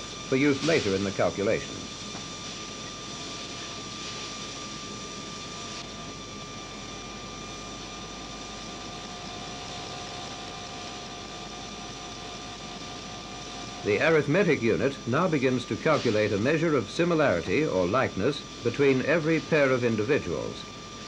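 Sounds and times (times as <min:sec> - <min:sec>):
tape drive whirring: 0:00.0 - 0:03.8.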